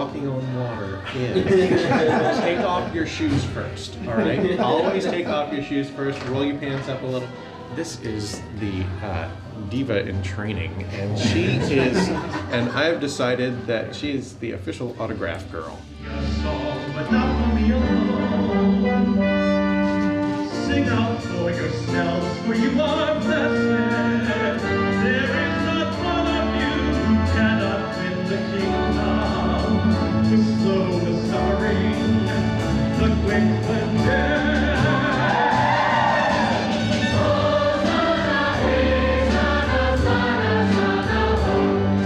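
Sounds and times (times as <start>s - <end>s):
choir singing: 0.0s - 7.9s, 10.8s - 14.2s, 15.9s - 42.0s
instrumental accompaniment: 0.0s - 42.0s
orchestral music with brass chords: 0.0s - 42.0s.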